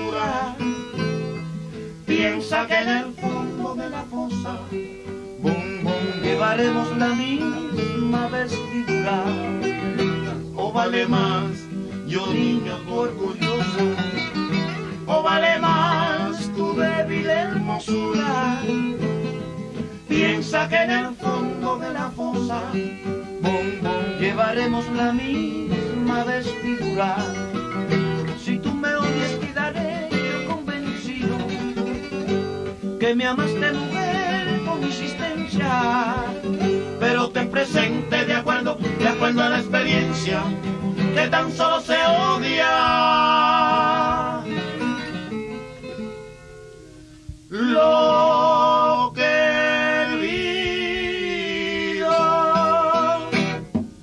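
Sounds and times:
bass: 0.0 - 54.0
plucked guitar: 0.0 - 54.0.

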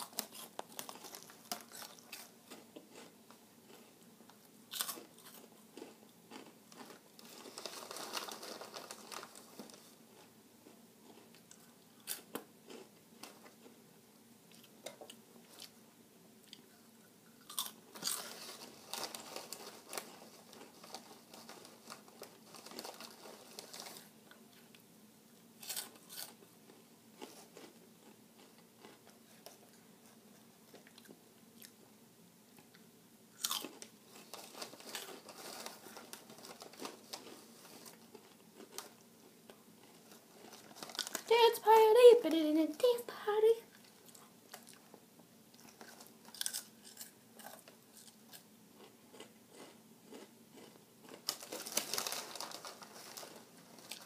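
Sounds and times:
crunching snacks being chewed: 0.0 - 13.8, 17.4 - 24.8, 25.6 - 31.9, 32.6 - 41.3, 43.7 - 54.0.

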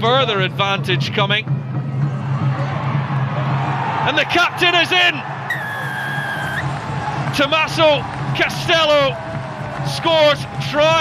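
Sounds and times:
crowd background noise: 1.4 - 11.0
referee's whistle blast: 5.5 - 6.6.

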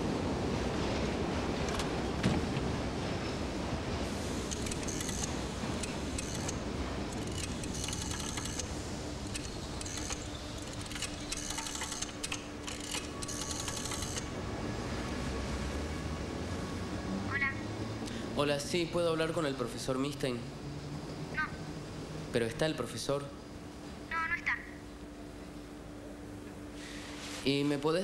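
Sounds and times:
subway station rumble: 0.0 - 28.0
payphone metallic clicks and rattles: 4.5 - 6.6, 7.2 - 14.3.

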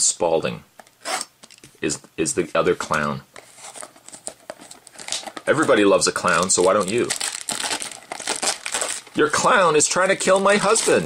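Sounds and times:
plastic shrink wrap crinkling: 3.4 - 11.0.

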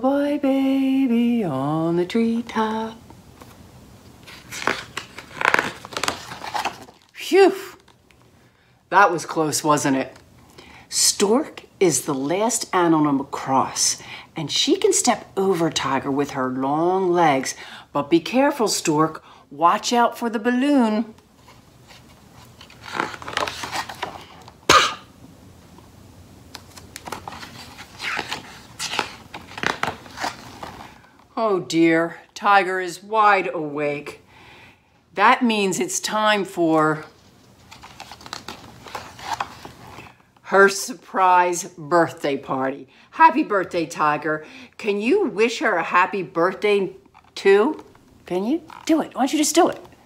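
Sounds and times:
book pages rustling and turning: 3.1 - 8.3, 21.2 - 24.6, 26.5 - 31.3, 37.0 - 40.4, 47.0 - 50.0.

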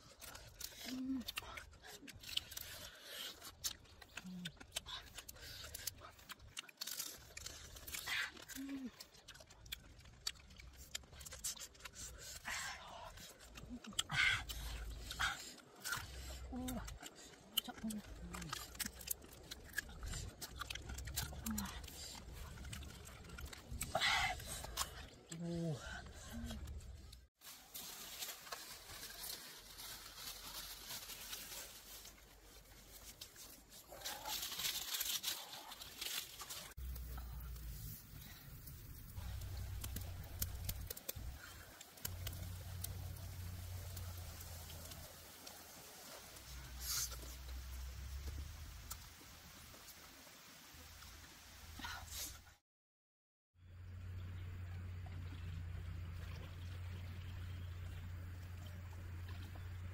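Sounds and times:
chewing and sucking: 0.0 - 50.1
crab shells cracking: 0.1 - 12.1, 15.5 - 25.3, 39.3 - 46.1.

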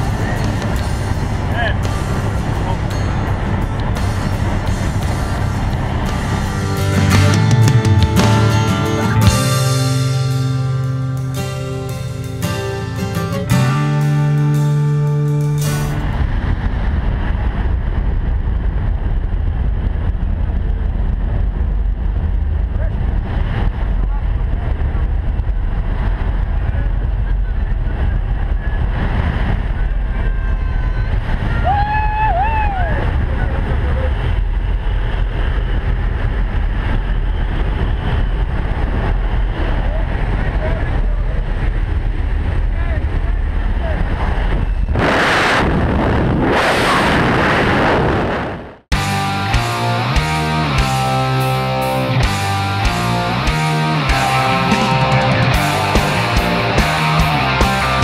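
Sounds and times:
rush of wind: 0.0 - 11.1, 15.6 - 58.0
light aircraft engine drone: 0.0 - 13.6, 14.3 - 58.0.

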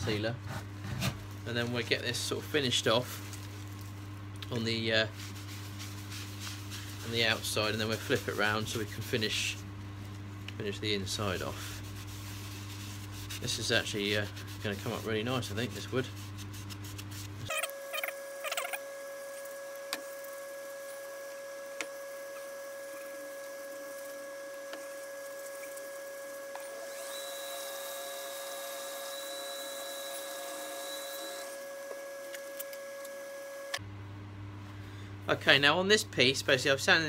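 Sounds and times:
cloth rubbing spinning bowl: 5.0 - 26.5
wood lathe motor whining: 17.5 - 33.8
thin high whistle: 26.9 - 31.6.

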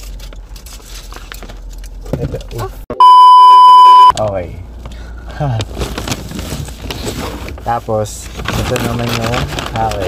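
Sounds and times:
high steady test tone beep: 3.0 - 4.1.

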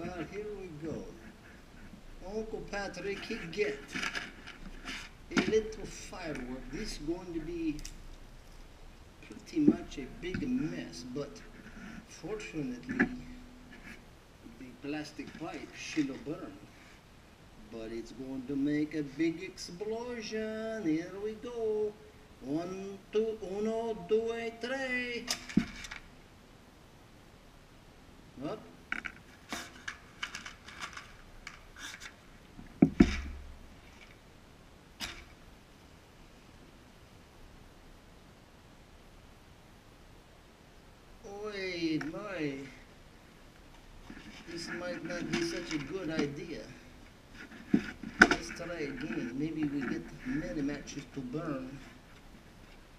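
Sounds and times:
man speaking: 0.0 - 1.3, 2.2 - 4.2, 5.3 - 7.9, 9.2 - 13.5, 14.5 - 16.6, 17.6 - 25.4, 28.4 - 28.8, 41.2 - 42.9, 44.4 - 46.9, 48.2 - 51.9
matches scraping on matchbox: 29.0 - 32.2.

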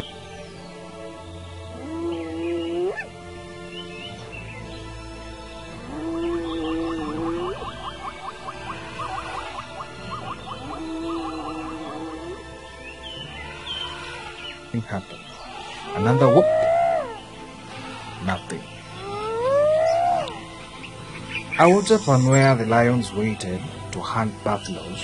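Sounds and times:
hyena whooping: 1.8 - 3.1, 5.8 - 12.4, 15.5 - 17.3, 19.0 - 20.4.

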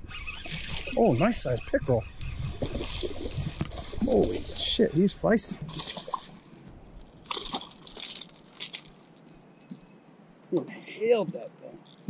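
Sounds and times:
fish thrashing and splashing: 0.1 - 9.4.

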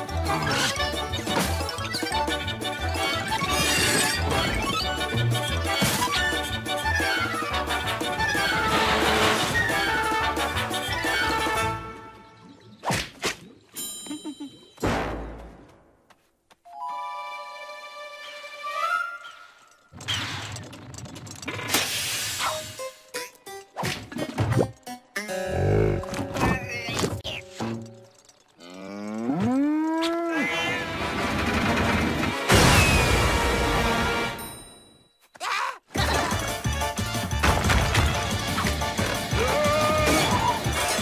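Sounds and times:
cartoon cow mooing: 28.6 - 30.8.

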